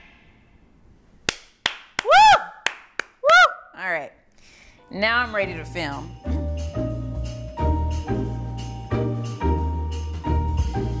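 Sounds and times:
sharp hand claps: 1.3s - 3.5s
background music: 4.8s - 11.0s.

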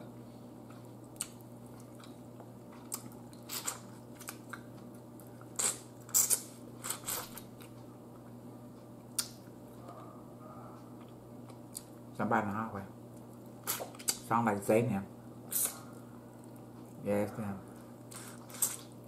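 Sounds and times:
chewing: 0.7s - 8.4s, 15.6s - 17.0s.

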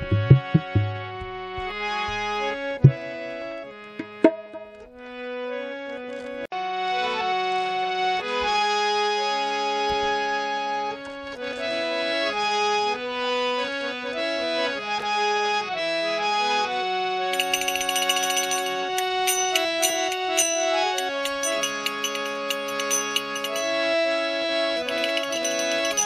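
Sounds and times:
reed keyboard melody: 0.0s - 3.2s
high bright jingling: 17.3s - 23.9s, 24.8s - 26.0s.

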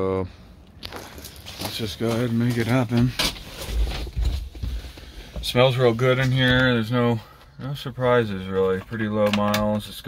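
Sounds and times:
rustling in a seat: 0.8s - 7.2s.

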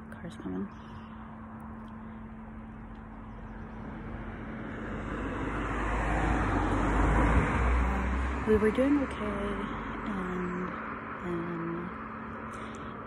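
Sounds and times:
car crossing bridge: 0.0s - 13.0s.

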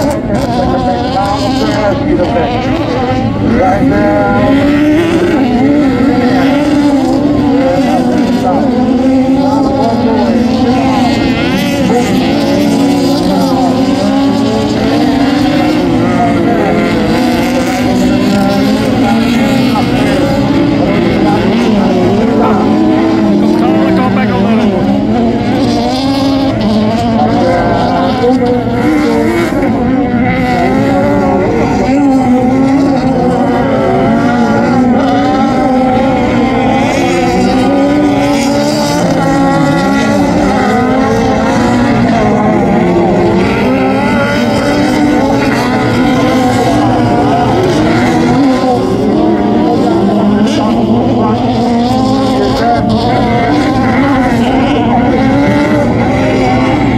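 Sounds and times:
racing car engines revving: 0.0s - 56.9s.

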